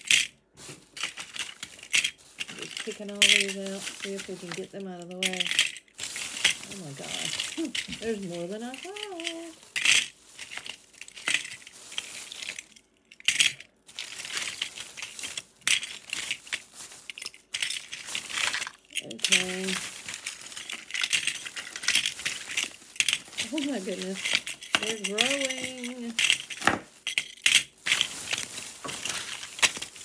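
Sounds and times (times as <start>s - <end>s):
plastic bag crinkling: 0.0s - 30.0s.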